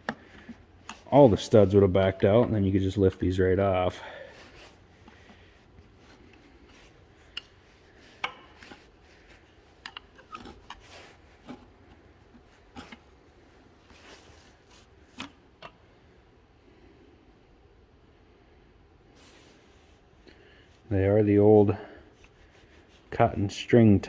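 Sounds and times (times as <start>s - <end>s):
screwdriver clicks and scrapes: 9.8s - 11.6s.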